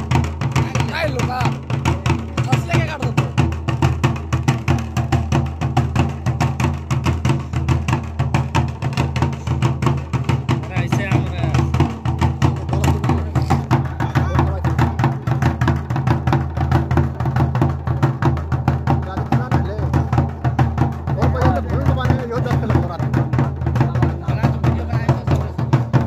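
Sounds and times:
barrel drums beaten by hand: 0.0s - 26.0s
voices calling: 0.0s - 26.0s.

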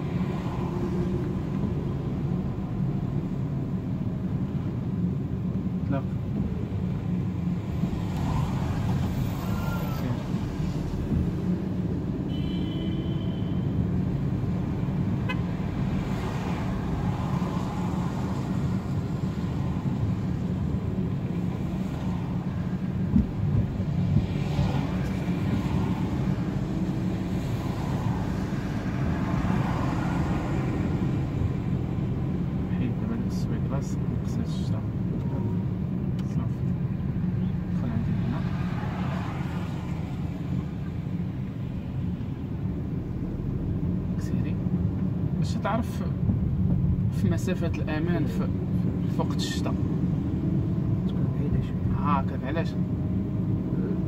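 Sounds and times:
car engine and road noise: 0.0s - 54.0s
car horn toot: 12.3s - 13.8s, 15.3s - 15.5s.

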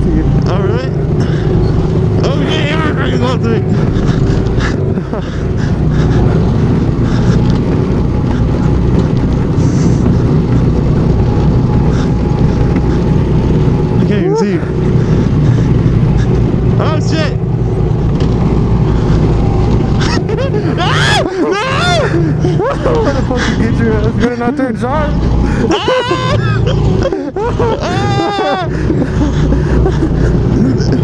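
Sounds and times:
go-kart engine drone: 0.0s - 31.0s
voices and laughter: 0.9s - 17.3s, 18.5s - 31.0s.

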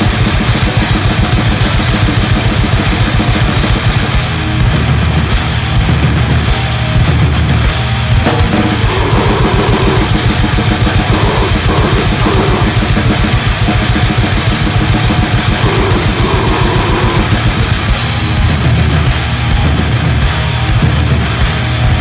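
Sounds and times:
distorted guitar and bass: 0.0s - 22.0s
grindcore band playing fast: 0.0s - 22.0s
rapid even drumming: 0.0s - 22.0s.

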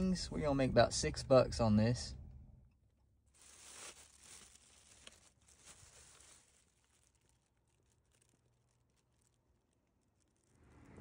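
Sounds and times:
plastic bag rustling: 3.2s - 11.0s.

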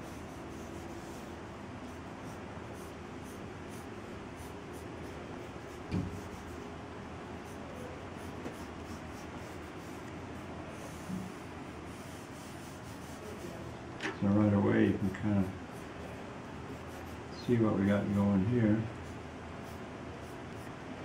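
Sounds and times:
pencil scratching on paper: 0.0s - 6.7s, 7.4s - 10.1s, 10.8s - 13.5s, 16.7s - 17.2s.

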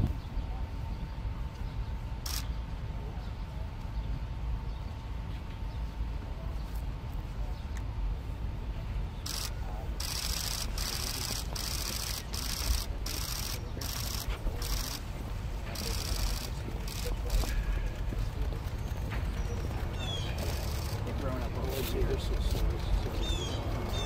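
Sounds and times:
faint murmured voices: 0.0s - 24.0s
bursts of high hiss: 9.3s - 17.6s.

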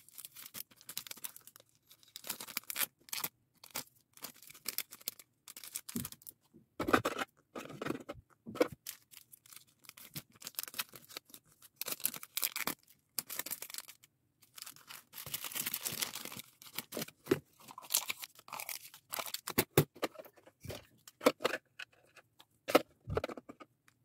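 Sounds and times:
plastic bags crinkling: 0.0s - 6.3s, 8.8s - 19.6s
small items tapping and clicking: 19.1s - 24.0s.

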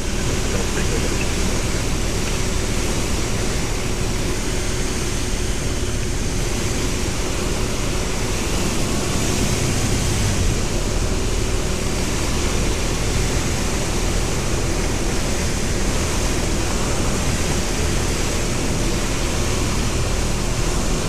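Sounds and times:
light aircraft engine and propeller: 0.0s - 21.0s.

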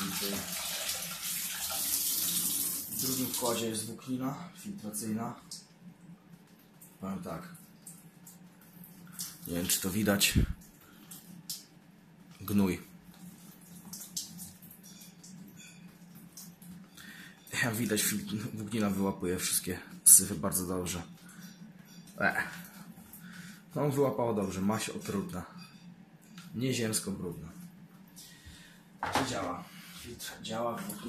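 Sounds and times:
water pouring and splashing: 0.0s - 3.7s, 7.4s - 11.7s, 13.0s - 16.8s
water trickling and dripping: 0.0s - 3.8s, 5.4s - 26.6s.

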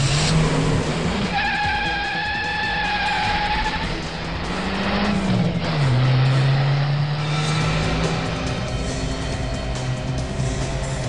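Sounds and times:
dramatic background music: 0.0s - 11.0s
vehicle engines speeding: 0.0s - 11.0s.

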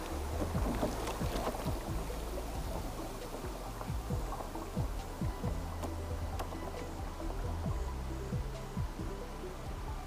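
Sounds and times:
whitewater splashing against canoe: 0.0s - 7.1s
background music: 0.0s - 10.0s.

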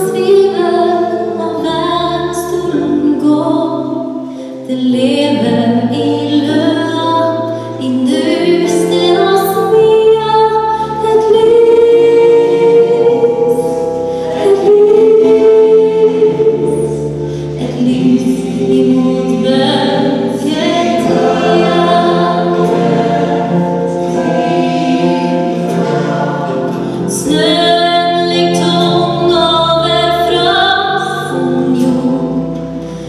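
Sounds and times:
choir singing in harmony: 4.9s - 33.0s.

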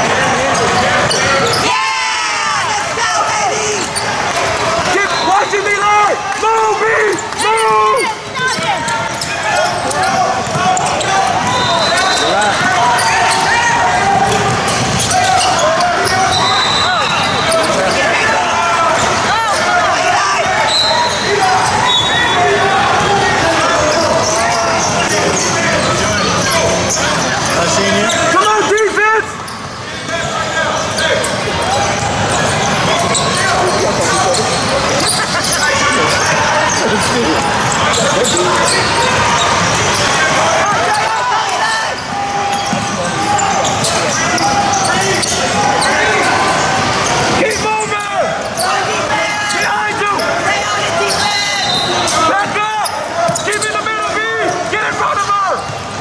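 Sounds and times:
voices and shouts echoing: 0.0s - 56.0s.

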